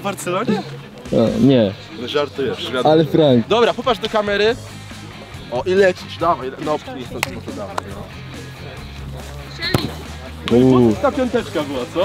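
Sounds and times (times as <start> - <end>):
background music: 0.0 - 12.0
football kick thud: 9.6 - 10.6.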